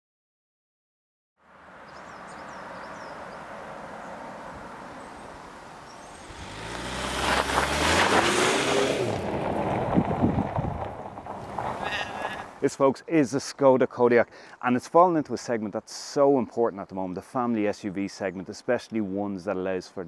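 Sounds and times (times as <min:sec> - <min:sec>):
car passing by: 0:01.5 - 0:12.6.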